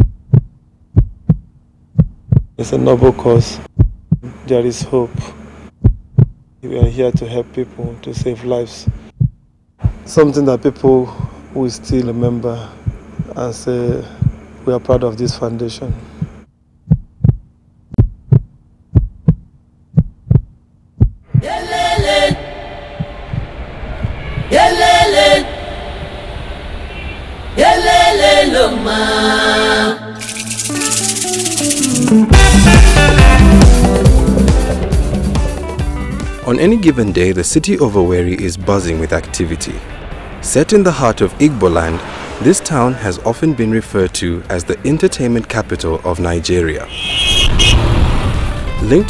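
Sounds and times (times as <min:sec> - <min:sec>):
heartbeat double thump: 0:00.0 - 0:02.6, 0:03.7 - 0:10.1, 0:11.2 - 0:15.1, 0:15.8 - 0:22.1, 0:23.0 - 0:24.5
low hum: 0:00.0 - 0:32.8
loud pitched blast: 0:46.8 - 0:49.0.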